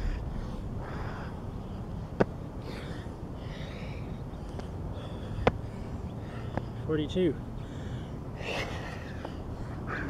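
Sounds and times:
man breathing heavily: 0.0 - 10.0.

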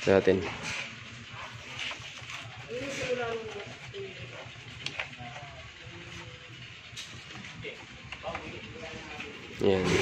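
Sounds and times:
low background hum: 0.0 - 10.0
surrounding talk: 0.0 - 10.0.

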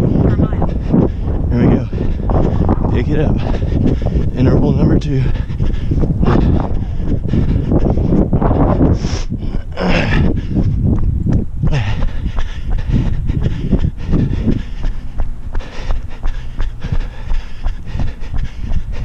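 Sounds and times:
runner breathing hard: 0.0 - 19.0
wind rumble on microphone: 0.0 - 19.0.

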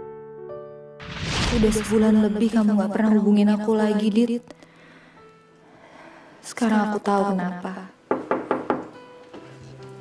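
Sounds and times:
soft background music: 0.0 - 10.0
knocks on wooden door: 8.1 - 8.9.

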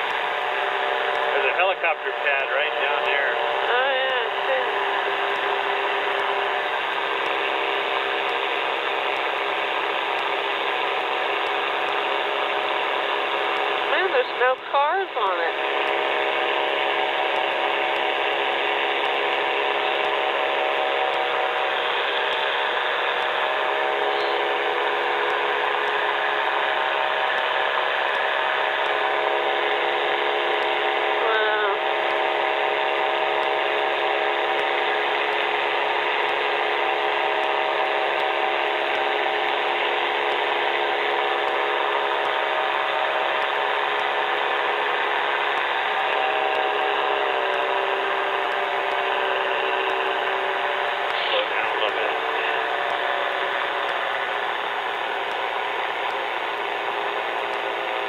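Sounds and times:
aircraft engine and propeller drone: 0.0 - 58.0.

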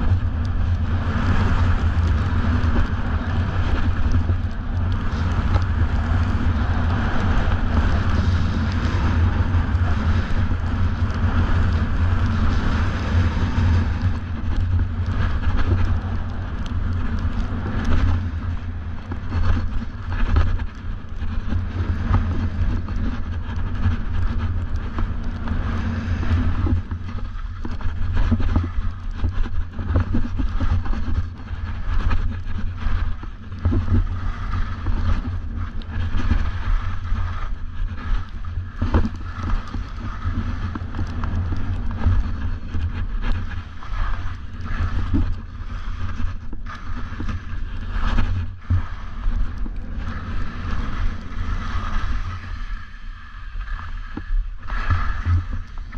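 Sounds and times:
skis scraping over snow: 0.0 - 55.9
wind buffeting microphone: 0.0 - 55.9.

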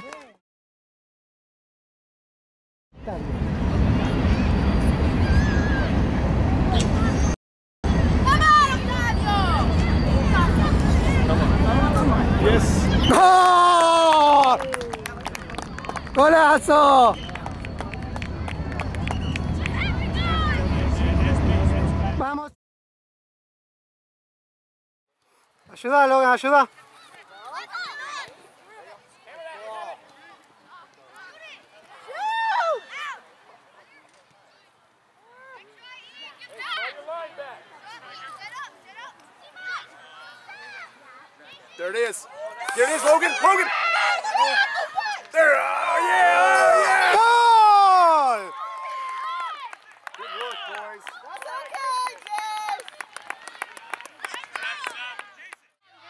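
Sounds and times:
spectators clapping: 13.3 - 19.8, 48.4 - 55.7
voices calling out: 35.2 - 49.0
spectators shouting: 42.4 - 50.8.

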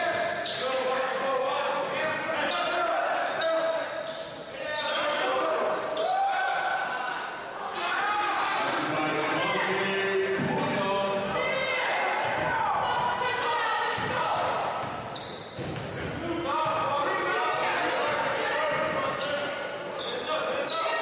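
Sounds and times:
voices echoing in gymnasium: 0.0 - 21.0.

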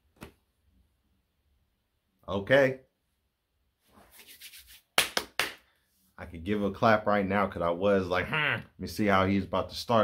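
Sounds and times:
hands rubbing together: 3.9 - 5.6
sharp hand claps: 4.4 - 5.7.

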